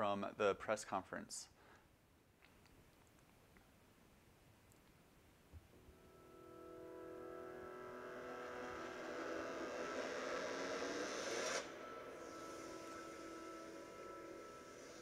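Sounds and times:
sustained tone: 5.8 - 15.0
synthesizer drone chord: 5.9 - 15.0
rising whoosh: 7.6 - 15.0.

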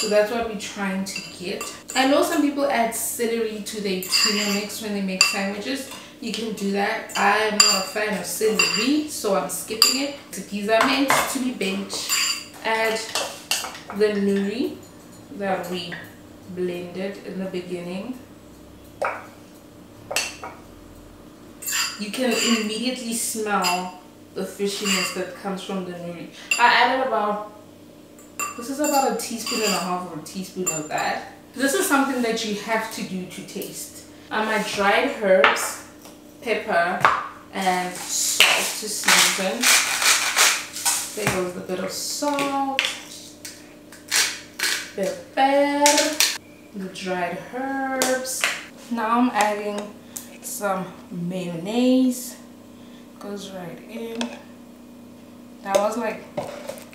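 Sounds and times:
metal spoon clinking on glass jar: 4.0 - 5.4, 8.6 - 8.9, 12.0 - 13.0, 21.6 - 22.8, 24.8 - 25.2, 28.4 - 29.9
spice grinder rasping: 37.9 - 41.2, 43.1 - 45.0.

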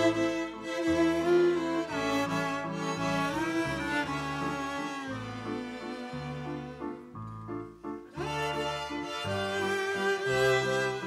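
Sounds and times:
string ensemble playing: 0.0 - 11.0.

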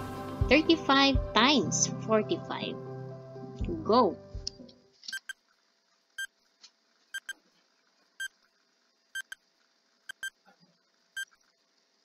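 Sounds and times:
timer beeping: 5.2 - 5.4, 7.2 - 7.4, 9.2 - 9.4, 10.1 - 10.3.

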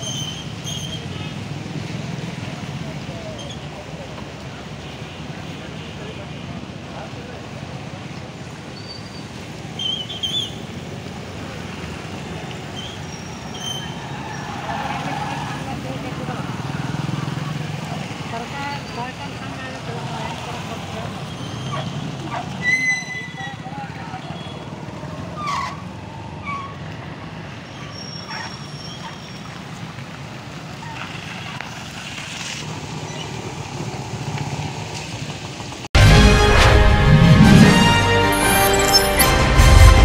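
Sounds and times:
traffic rumble: 0.0 - 40.0.

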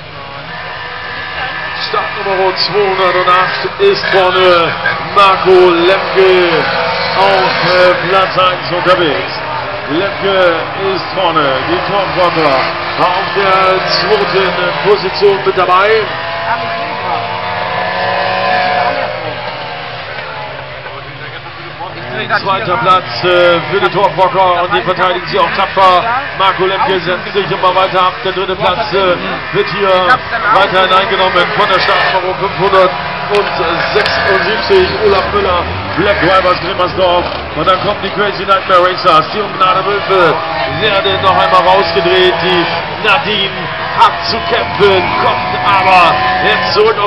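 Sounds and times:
racing car engines droning: 0.0 - 47.0.

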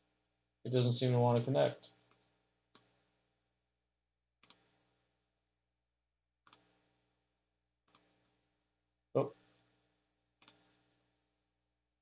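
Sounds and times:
faint computer mouse clicks: 4.4 - 4.7, 6.5 - 6.7, 7.9 - 8.1, 10.4 - 10.8.

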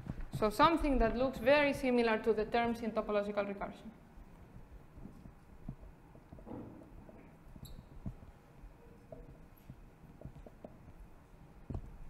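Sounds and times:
marker tapping on whiteboard: 9.1 - 11.0.

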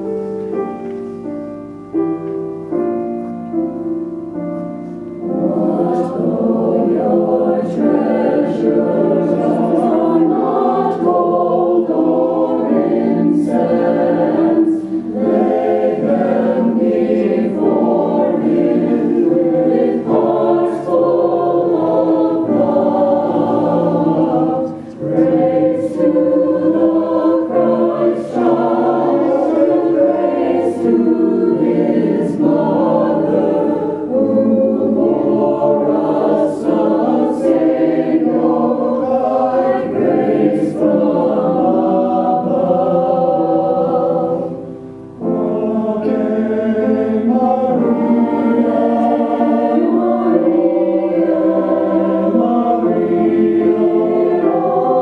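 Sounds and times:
mixed choir singing held notes: 0.0 - 55.0.

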